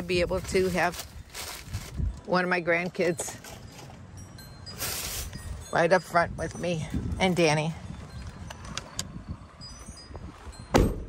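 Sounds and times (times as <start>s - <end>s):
wind rumble on microphone: 0.0s - 2.4s, 5.1s - 11.0s.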